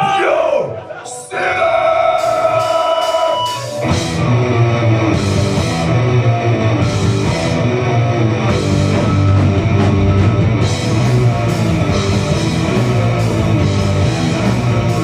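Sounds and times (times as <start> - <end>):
live rock band: 0.0 - 15.0.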